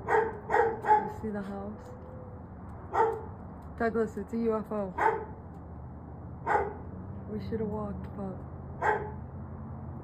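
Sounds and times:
dog barking: 0.0 - 1.2, 2.9 - 3.3, 5.0 - 5.4, 6.4 - 6.9, 8.8 - 9.2.

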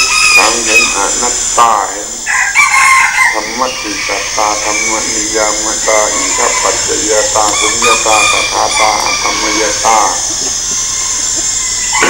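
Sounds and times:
steady high hiss: 0.0 - 12.0
old man speaking: 0.4 - 2.3, 3.3 - 10.3.

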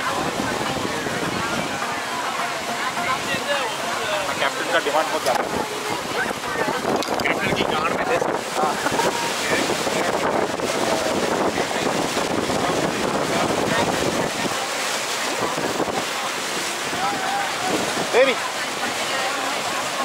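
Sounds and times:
water washing past boat hull: 0.0 - 20.0
wind buffeting microphone: 0.0 - 20.0.

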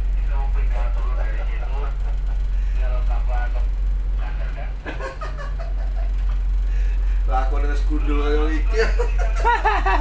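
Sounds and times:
boat engines droning: 0.0 - 10.0.

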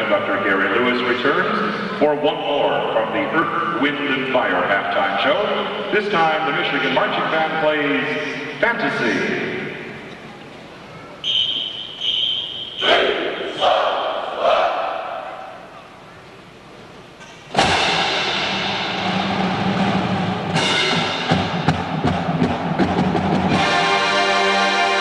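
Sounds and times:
high whistle-like tone: 11.2 - 13.0
drum strokes: 17.5 - 24.6
marching band of brass and drums: 17.5 - 25.0.

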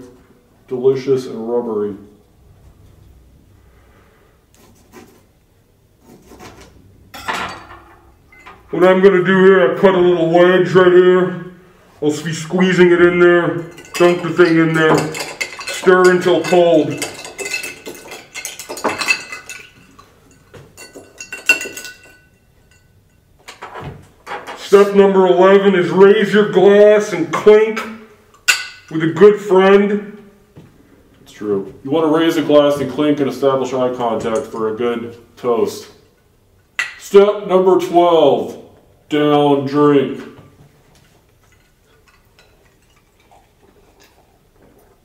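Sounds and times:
spoon clinking against glass: 13.6 - 23.2.

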